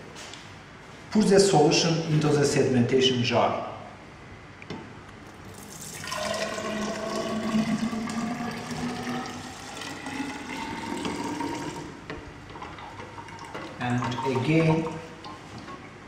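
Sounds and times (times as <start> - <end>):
liquid pouring and splashing: 5.3 - 15.9.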